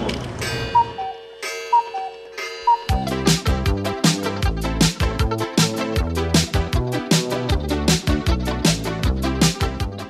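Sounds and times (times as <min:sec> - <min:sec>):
clock tick-tock: 0:00.0 - 0:04.2
short chiming tones: 0:00.4 - 0:03.2
music with a heavy beat: 0:02.9 - 0:10.0.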